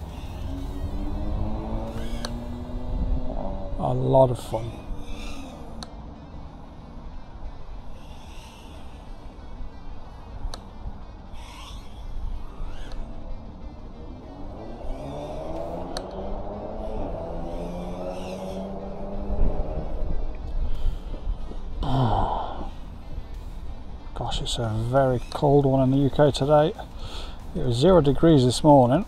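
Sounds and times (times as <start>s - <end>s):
drone motors whining: 0.0s - 24.1s
low rumble: 0.0s - 26.7s
faint background music: 0.0s - 29.0s.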